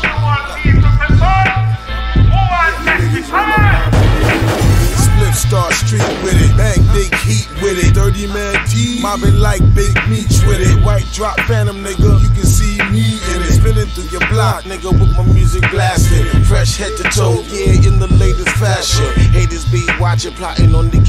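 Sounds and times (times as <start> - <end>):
heavy repeating bass: 0.0 - 21.0
rapping over a beat: 0.0 - 21.0.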